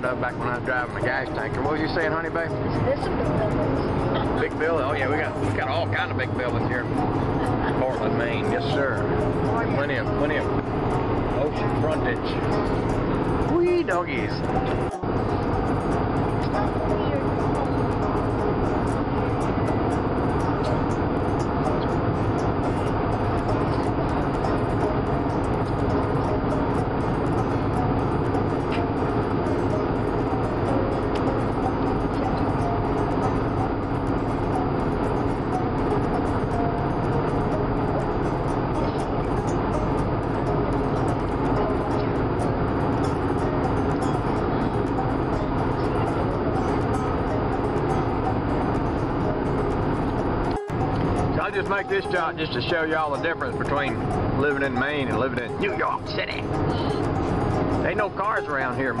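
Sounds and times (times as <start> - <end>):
car road and engine noise: 0.0 - 59.0
faint music: 0.0 - 59.0.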